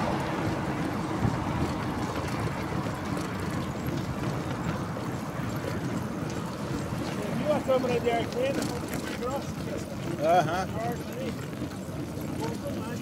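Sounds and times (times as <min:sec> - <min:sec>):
tyres rolling on asphalt: 0:00.0 - 0:13.0.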